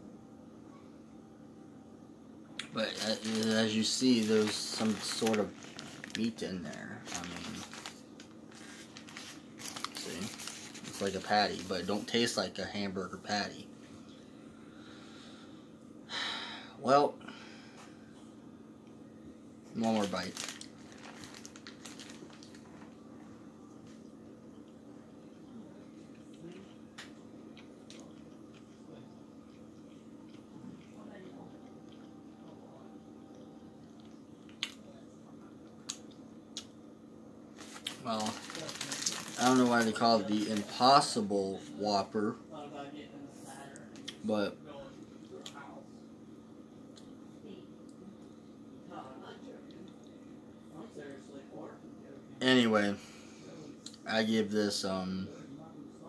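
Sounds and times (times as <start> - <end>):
low hum: 0.0 - 52.4
paper wrapper crinkling: 2.8 - 12.1, 19.8 - 23.0, 37.6 - 41.2
chewing food: 23.8 - 34.8.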